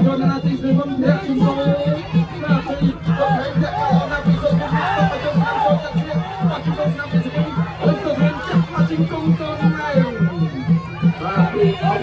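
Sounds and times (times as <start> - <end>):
crowd shouting: 0.0 - 12.0
drum beating quick rhythm: 0.0 - 12.0.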